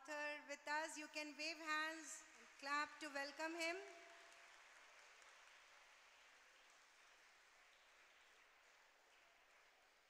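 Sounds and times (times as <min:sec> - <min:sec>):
faint audience applause: 0:01.8 - 0:10.0.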